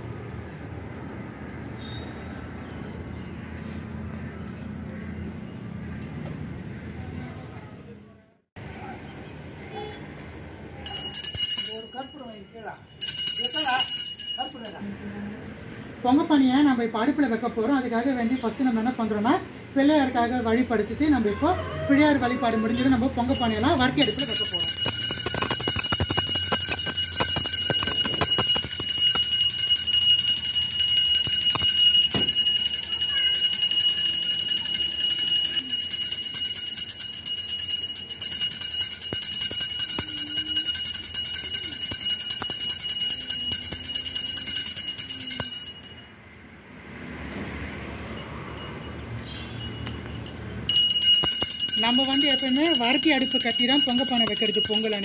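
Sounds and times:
hand bell ringing: 10.8 - 14.8, 23.1 - 46.2, 48.1 - 55.0.

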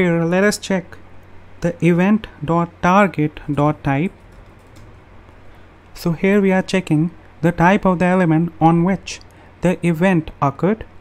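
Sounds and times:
faint keyboard typing: 3.4 - 5.4.

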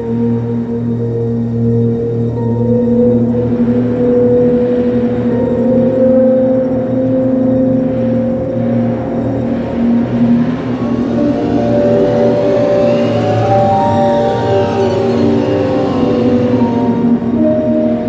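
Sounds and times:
drone of low tones: 0.0 - 18.0.

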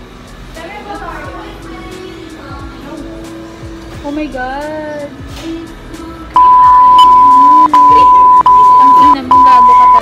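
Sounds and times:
background music: 0.0 - 10.0
censor bleep: 6.4 - 10.0.

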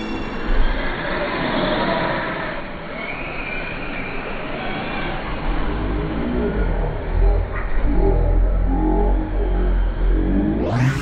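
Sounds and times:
slowed down rc buggies racing: 0.0 - 11.0.

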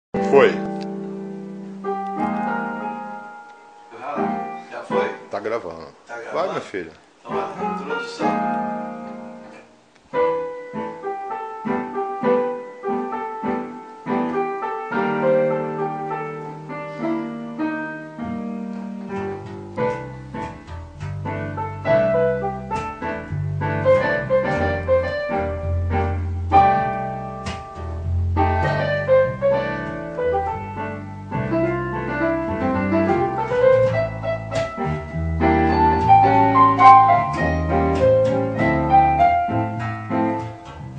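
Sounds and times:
digital piano playing: 0.2 - 40.9
electric bass guitar: 18.3 - 40.9.

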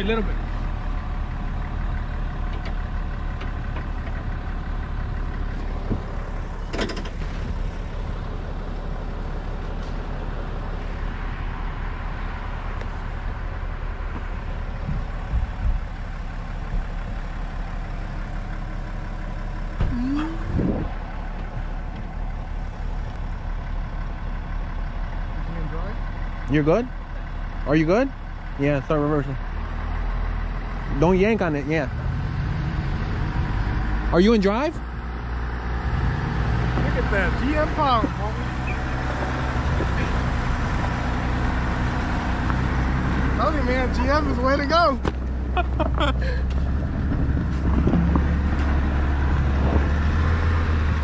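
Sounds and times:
diesel engine idling: 0.0 - 51.0.

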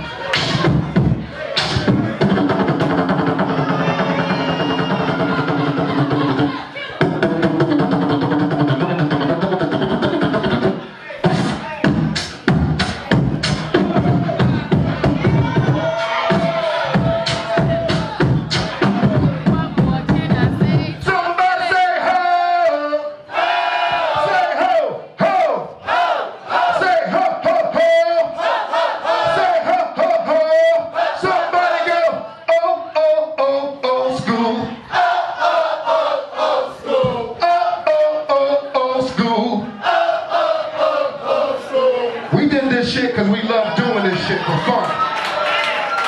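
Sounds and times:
person beatboxing: 0.0 - 21.1
man vocalising through a microphone: 5.0 - 12.2, 29.4 - 34.8, 37.4 - 39.7.

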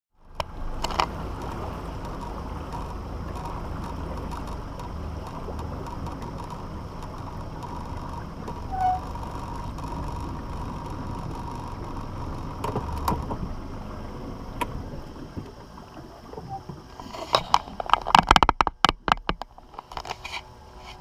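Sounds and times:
boat motor hum: 0.1 - 21.0
short high squeak: 8.6 - 9.2.

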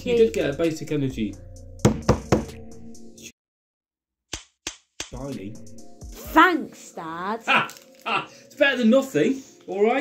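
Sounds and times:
background music: 0.0 - 3.3, 5.1 - 10.0.

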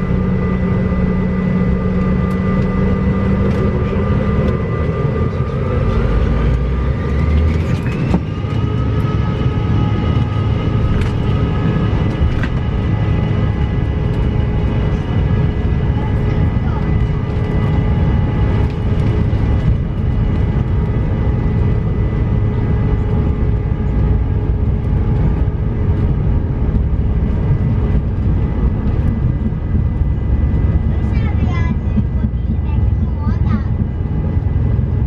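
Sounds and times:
jet engine whine: 0.0 - 35.0
jet engines rumbling: 0.0 - 35.0.

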